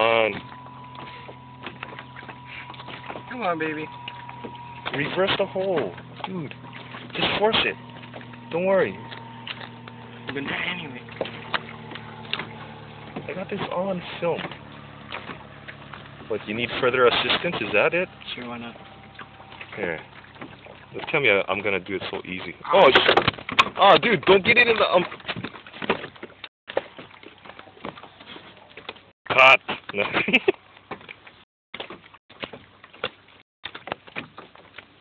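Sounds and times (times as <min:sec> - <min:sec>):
steady low hum: 0:00.0 - 0:22.6.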